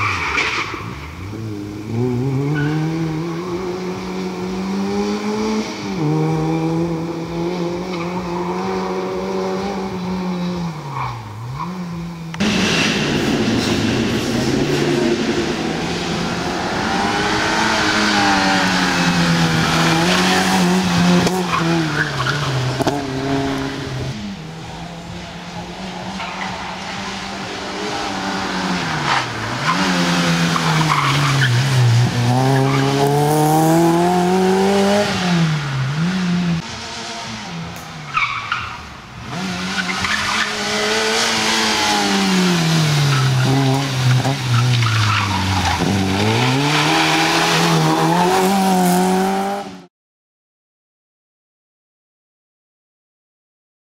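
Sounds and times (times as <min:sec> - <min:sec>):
small car engine revving hard: 0:01.2 - 0:10.8, 0:11.5 - 0:26.1, 0:27.4 - 0:37.8, 0:39.2 - 0:49.9.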